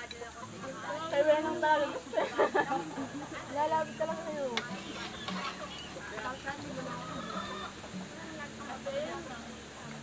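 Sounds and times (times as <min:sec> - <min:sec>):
people chattering: 0:00.0 - 0:10.0
chicken clucking: 0:04.6 - 0:08.1.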